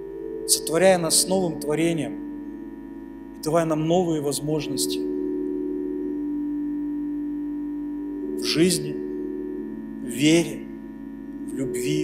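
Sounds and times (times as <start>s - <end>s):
keyboard sustained pad chord: 0.0s - 12.0s.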